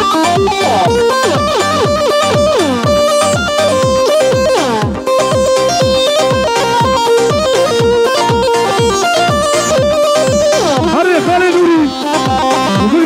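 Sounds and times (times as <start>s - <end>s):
band melody line: 0.0s - 13.0s
fast drum beat: 0.0s - 13.0s.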